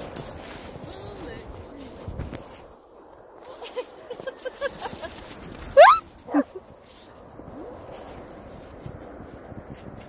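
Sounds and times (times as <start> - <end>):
footsteps crunching in snow: 0.0 - 10.0
dog yelping: 5.8 - 6.6.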